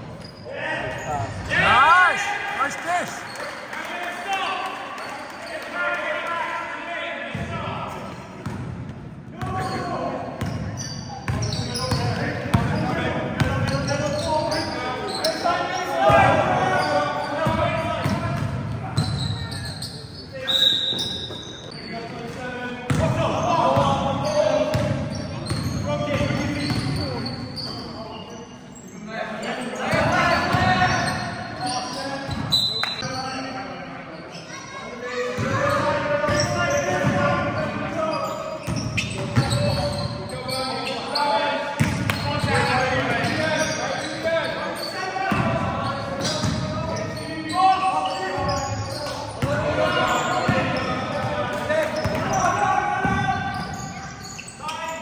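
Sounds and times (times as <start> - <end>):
players calling out: 0.4 - 6.3
basketball bouncing on court: 8.4 - 8.8, 10.4 - 12.8, 17.4 - 19.2, 41.8 - 43.4, 45.3 - 46.8
shoes squeaking on court: 9.4 - 13.0, 13.6 - 23.6, 24.2 - 33.6, 35.4 - 55.0.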